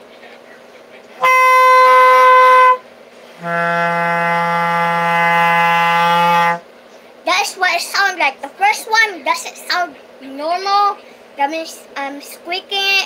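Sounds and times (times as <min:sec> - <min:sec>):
bass clarinet low steady note: 0:01.2 - 0:02.8, 0:03.4 - 0:06.6
bass clarinet squeaked note: 0:01.2 - 0:02.8, 0:03.4 - 0:06.6.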